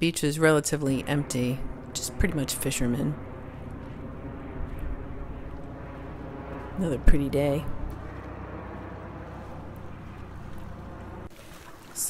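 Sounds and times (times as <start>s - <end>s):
wind on microphone: 0.4s - 11.4s.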